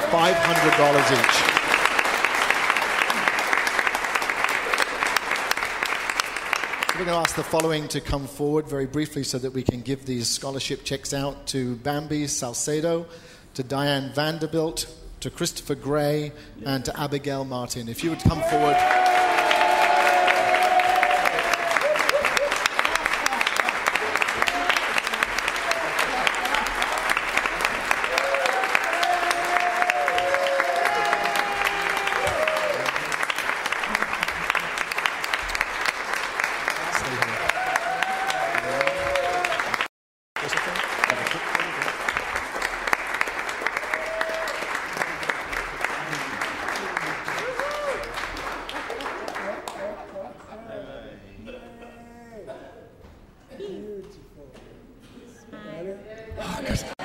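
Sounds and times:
congregation applauding: 0.0 - 7.9, 18.0 - 50.2.

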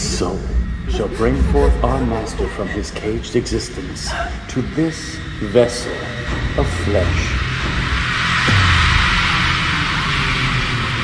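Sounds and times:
low droning hum: 0.0 - 11.0.

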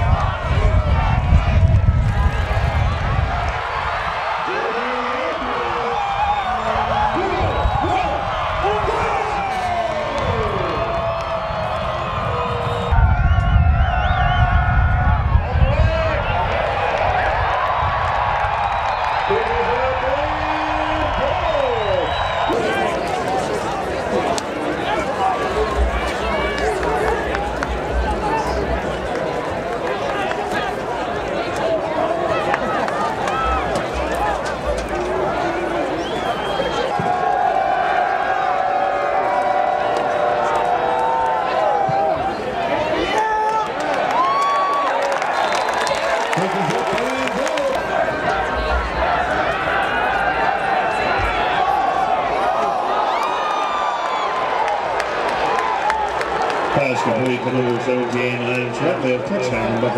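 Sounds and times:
stadium crowd cheering: 0.0 - 59.9.

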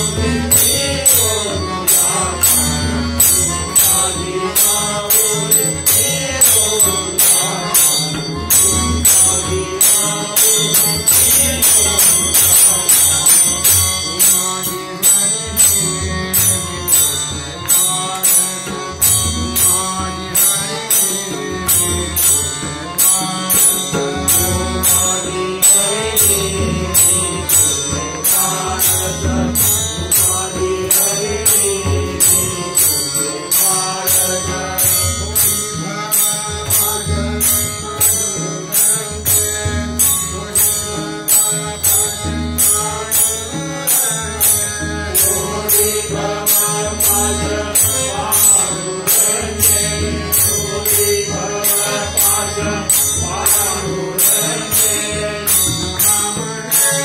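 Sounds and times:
harmonium chords: 0.0 - 57.0
person singing: 0.0 - 57.0
tabla drumming: 0.0 - 57.0
group singing devotional song: 45.2 - 55.8.

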